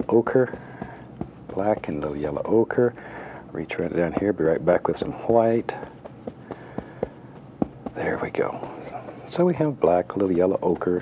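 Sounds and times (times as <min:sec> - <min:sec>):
brush tapping against palette: 0:00.0 - 0:02.6, 0:04.0 - 0:04.6, 0:05.4 - 0:09.5, 0:10.1 - 0:11.0.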